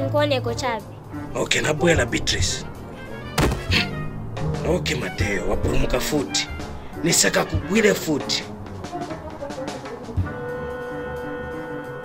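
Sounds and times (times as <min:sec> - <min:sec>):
background music: 0:00.0 - 0:12.0
cartoon impact thunk: 0:03.3 - 0:04.0.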